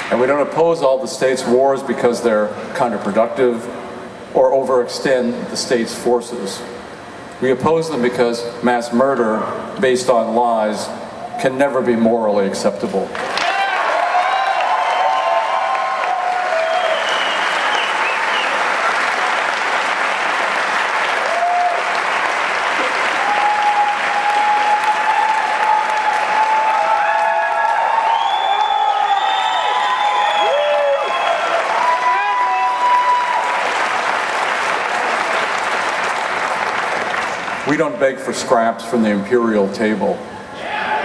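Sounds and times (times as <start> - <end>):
crowd applauding: 13.1 - 37.8
audience shouts and whoops: 13.3 - 19.0, 21.2 - 22.0, 22.8 - 33.8, 40.6 - 41.0.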